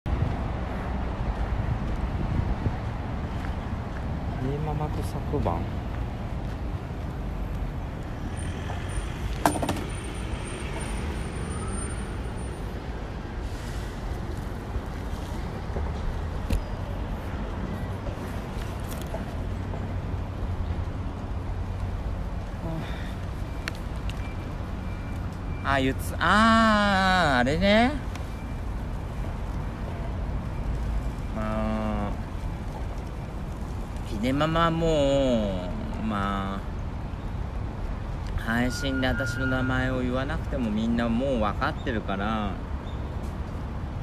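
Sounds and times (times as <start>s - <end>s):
road traffic rumble: 0.1s - 44.0s.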